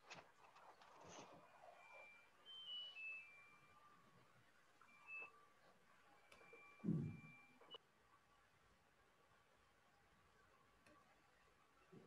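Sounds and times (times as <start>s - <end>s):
faint electronic beeps: 0.0s - 8.3s, 9.0s - 12.0s.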